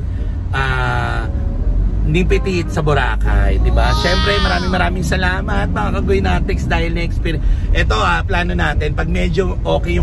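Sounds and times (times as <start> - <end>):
low rumble inside van: 0.0 - 10.0
person holding wavering vowel: 3.7 - 4.8.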